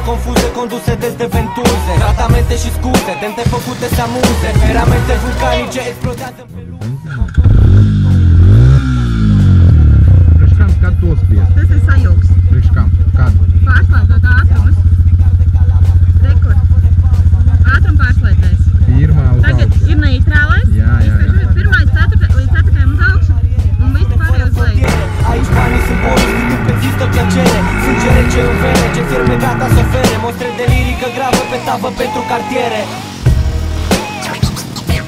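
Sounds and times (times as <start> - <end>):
voices: 0.0 - 7.4, 10.3 - 33.3, 33.9 - 35.0
quad bike engine revving: 6.7 - 34.8.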